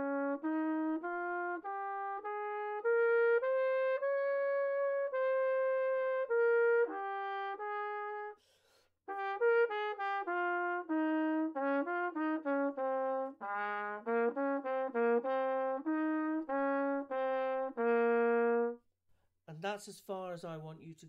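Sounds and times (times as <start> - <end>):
solo trumpet playing: 0.0 - 8.4, 9.1 - 18.8
quick breath intake: 8.4 - 9.0.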